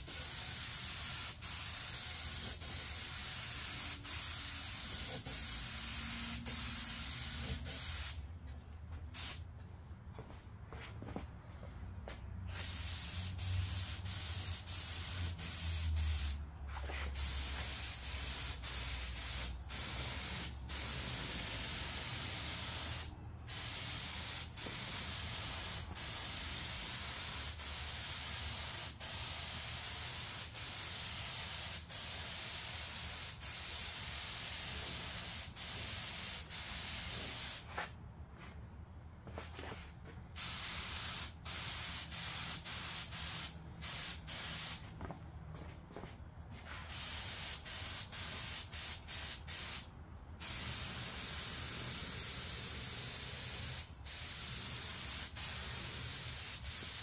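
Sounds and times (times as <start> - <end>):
paint spray gun hissing: 0.0 - 8.2, 9.1 - 9.4, 12.5 - 16.4, 17.0 - 37.7, 40.4 - 44.9, 46.7 - 57.0.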